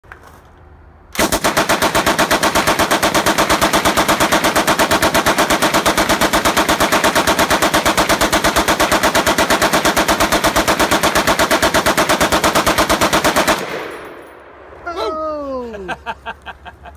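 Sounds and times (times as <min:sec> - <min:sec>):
machine gun firing full auto: 0:01.2 - 0:14.0.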